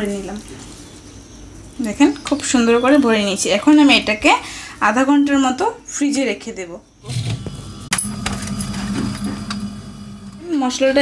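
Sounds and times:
low mechanical hum: 0:07.0 - 0:11.0.

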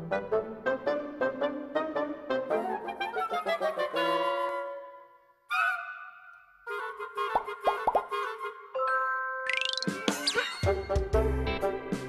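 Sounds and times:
pulsing children's show music: 0:06.8 - 0:12.0
cartoon plops: 0:07.4 - 0:08.1, 0:09.5 - 0:10.6.

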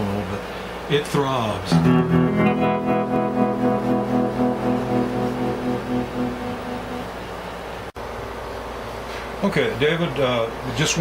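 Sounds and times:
electric guitar chord with tremolo: 0:01.7 - 0:07.5.

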